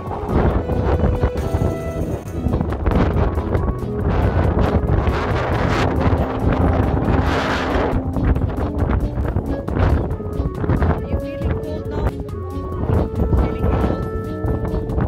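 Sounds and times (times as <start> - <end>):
background music: 0.0 - 15.0
wind buffeting microphone: 0.0 - 15.0.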